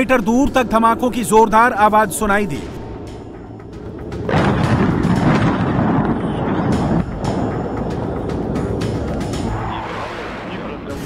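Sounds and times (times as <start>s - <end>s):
dramatic news sting music: 0.0s - 11.0s
rumbling boom sound effect: 3.2s - 7.7s.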